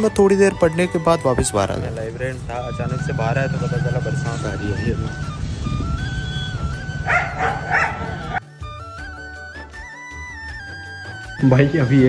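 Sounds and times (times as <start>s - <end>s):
background music: 0.0s - 12.0s
dog barking: 7.0s - 8.4s.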